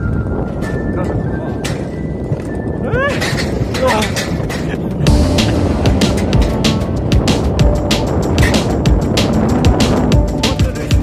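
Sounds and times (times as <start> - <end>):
coaster sled running on rails: 0.0 - 11.0.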